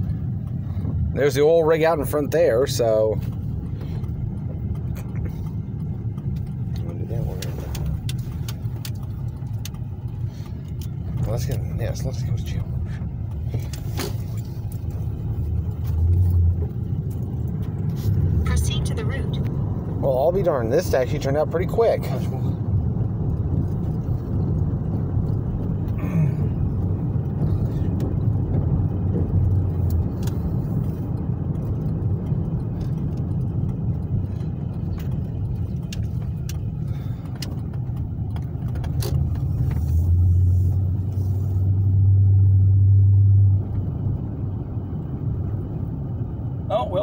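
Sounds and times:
car engine and road noise: 0:00.0 - 0:47.0.

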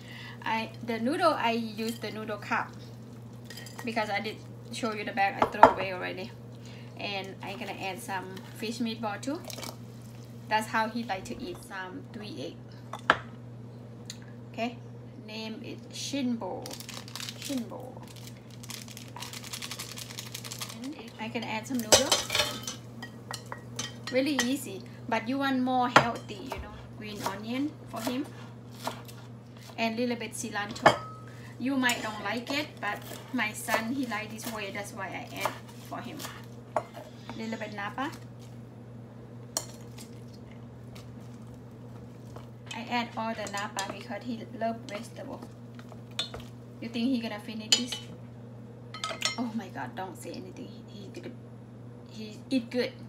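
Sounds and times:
steady low hum: 0:00.0 - 0:53.0
woman speaking: 0:00.4 - 0:02.8, 0:03.8 - 0:06.4, 0:07.0 - 0:09.5, 0:10.5 - 0:12.6, 0:14.5 - 0:16.8, 0:17.4 - 0:18.1, 0:20.8 - 0:22.3, 0:24.1 - 0:28.3, 0:29.8 - 0:31.0, 0:31.6 - 0:36.4, 0:37.3 - 0:38.2, 0:42.7 - 0:45.5, 0:46.8 - 0:48.1, 0:49.3 - 0:51.4, 0:52.1 - 0:53.0
plastic packet crinkling: 0:16.6 - 0:21.2.

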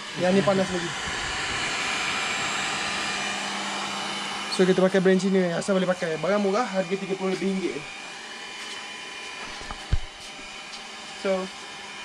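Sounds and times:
heat gun blowing air: 0:00.0 - 0:12.0
motor hum: 0:00.0 - 0:12.0.

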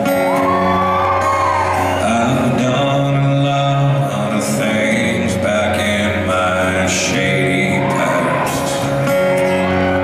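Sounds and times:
acoustic guitar: 0:00.0 - 0:10.0
man singing slow melody: 0:01.8 - 0:09.7.

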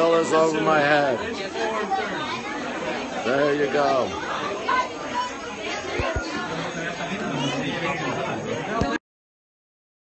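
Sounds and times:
people chattering: 0:00.0 - 0:09.0.

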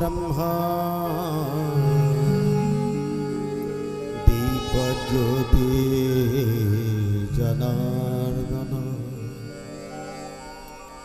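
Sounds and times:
devotional chant over speakers: 0:00.0 - 0:11.0.

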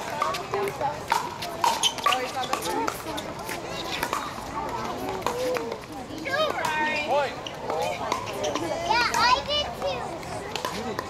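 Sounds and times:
high-pitched voices chattering: 0:00.0 - 0:11.0.

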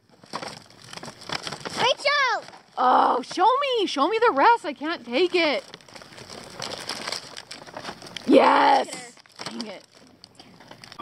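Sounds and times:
paper bag and wrapper crinkling: 0:00.0 - 0:11.0.

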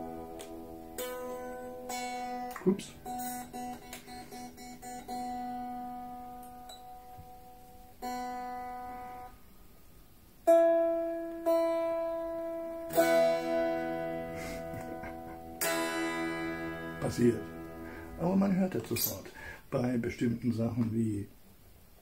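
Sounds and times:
unplugged electric guitar notes: 0:00.0 - 0:09.4, 0:10.4 - 0:18.3.

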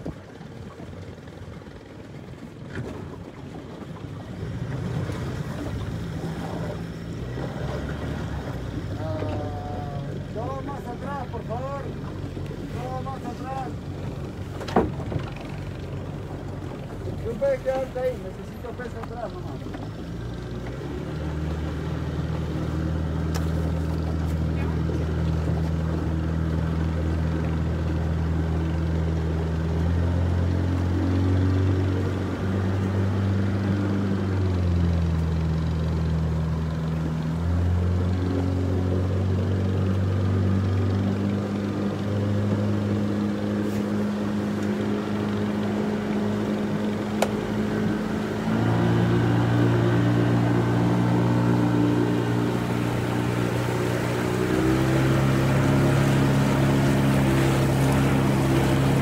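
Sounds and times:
motorboat engine running: 0:00.0 - 0:59.0.

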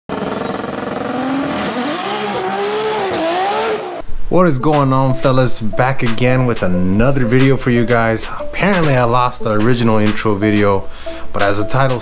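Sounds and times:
car engine revving: 0:00.1 - 0:04.0.

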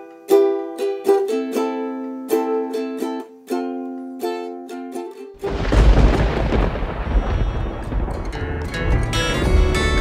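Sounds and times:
thunder rumbling: 0:05.4 - 0:10.0.

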